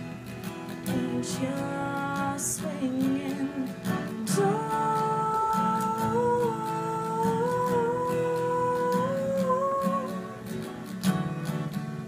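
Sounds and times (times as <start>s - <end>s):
acoustic guitar strummed: 0.0s - 12.0s
woman humming: 1.0s - 10.4s.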